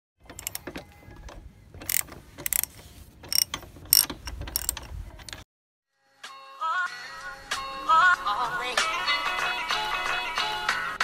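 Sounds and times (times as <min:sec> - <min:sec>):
wrench clicking and clinking: 0:00.4 - 0:00.7, 0:01.8 - 0:02.7, 0:03.3 - 0:04.9.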